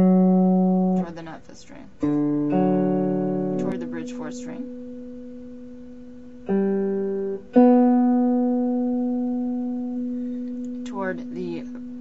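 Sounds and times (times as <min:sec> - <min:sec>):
electric guitar notes: 0:00.0 - 0:01.2, 0:02.0 - 0:12.0.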